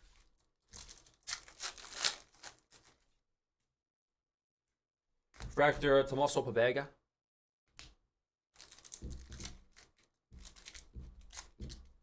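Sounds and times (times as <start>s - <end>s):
foil wrapper tearing and crinkling: 0.2s - 3.0s, 8.6s - 11.6s.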